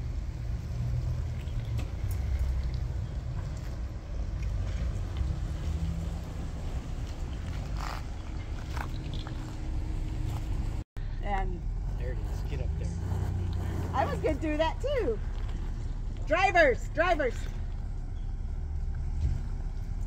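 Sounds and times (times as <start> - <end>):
suv engines rumbling: 0.0 - 20.0.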